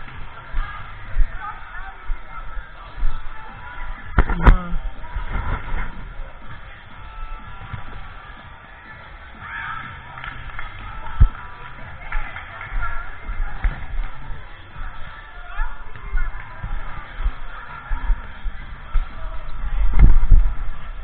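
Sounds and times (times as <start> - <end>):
background music: 0.0 - 21.0
players' voices: 0.0 - 21.0.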